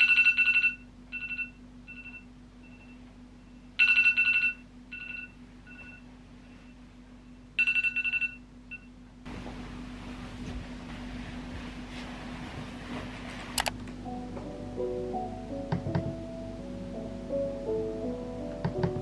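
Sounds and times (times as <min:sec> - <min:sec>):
smartphone alarm beeping: 0:00.0 - 0:06.8.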